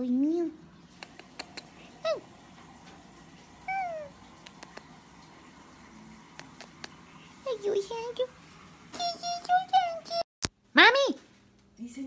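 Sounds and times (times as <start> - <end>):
small dog whining: 3.6 - 4.9.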